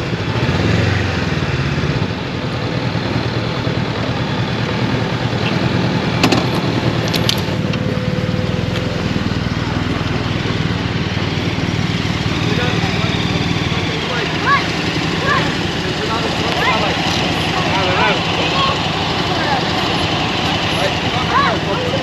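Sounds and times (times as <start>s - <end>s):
motorcycle engine idling: 0.0s - 22.0s.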